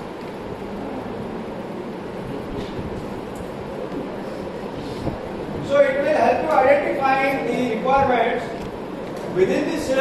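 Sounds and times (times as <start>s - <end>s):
ceiling fans humming: 0.0s - 10.0s.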